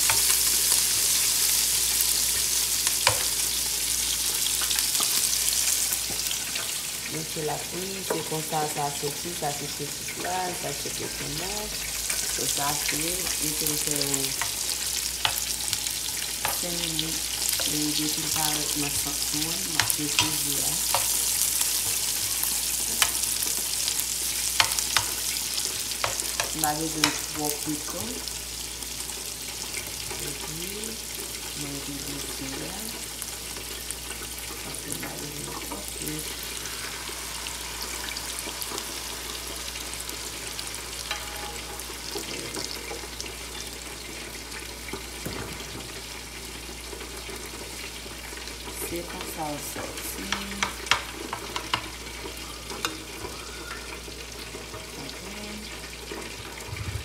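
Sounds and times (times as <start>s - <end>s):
vegetables sizzling in oil: 0.0s - 57.0s.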